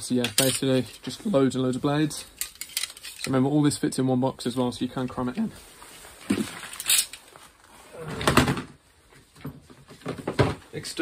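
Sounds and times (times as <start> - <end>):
hands rummaging through tools: 0.1 - 1.2, 2.1 - 3.4, 6.1 - 7.6.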